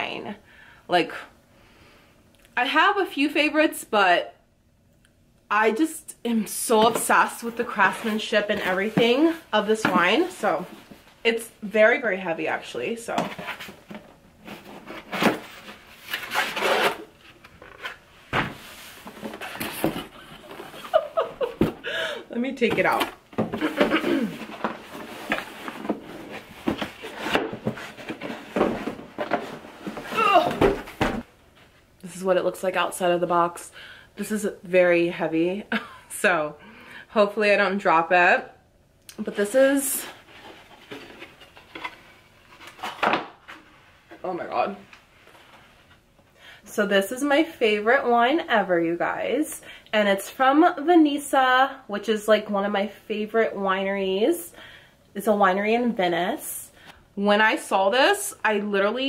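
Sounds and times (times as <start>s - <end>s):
cardboard flaps rubbing and scraping: 22.8s - 31.3s.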